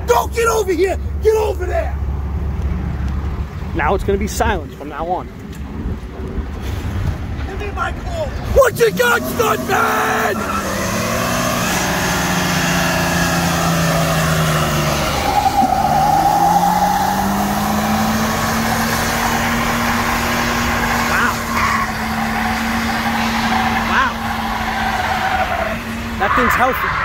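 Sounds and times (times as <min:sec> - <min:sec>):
tyre squealing on pavement: 0:08.3 - 0:27.0
engine revving high: 0:08.8 - 0:27.0.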